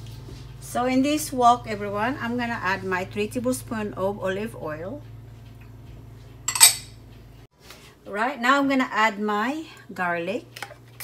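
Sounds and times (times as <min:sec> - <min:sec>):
glass bowl clinking: 0:06.5 - 0:06.9.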